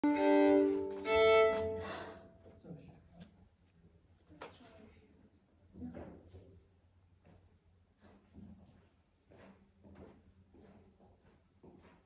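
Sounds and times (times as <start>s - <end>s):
violin sustained notes: 0.0s - 2.2s.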